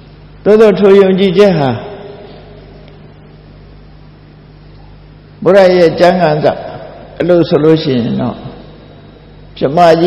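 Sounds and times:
low electrical hum: 0:00.0 - 0:10.0.

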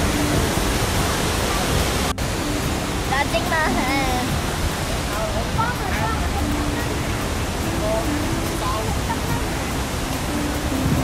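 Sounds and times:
waterfall roaring: 0:00.0 - 0:11.0.

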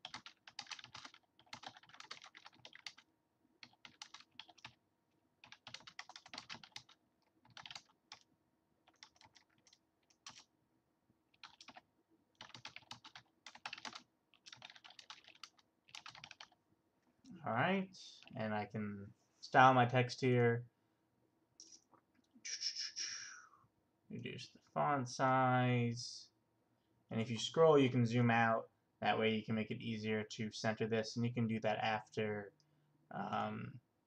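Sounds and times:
faint keyboard typing: 0:00.0 - 0:04.8, 0:05.4 - 0:10.6, 0:11.3 - 0:17.4, 0:18.1 - 0:18.5.

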